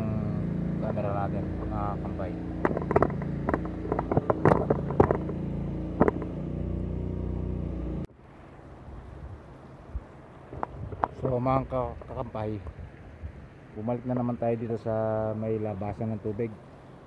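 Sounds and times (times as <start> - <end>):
low motor hum: 0.0 - 8.1
faint outdoor noise: 0.0 - 17.0
camera handling knocks: 2.6 - 6.4.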